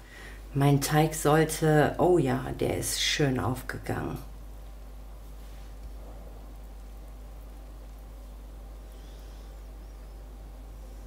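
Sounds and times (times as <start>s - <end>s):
steady low hum: 0.0s - 11.0s
faint even hiss: 4.0s - 11.0s.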